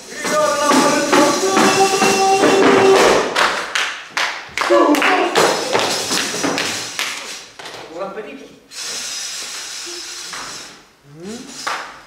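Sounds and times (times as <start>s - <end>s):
voices singing: 0.0s - 3.3s.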